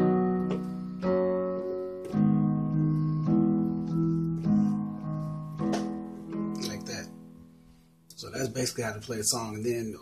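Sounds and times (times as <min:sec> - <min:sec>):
electronic keyboard piano chords: 0:00.0 - 0:10.0.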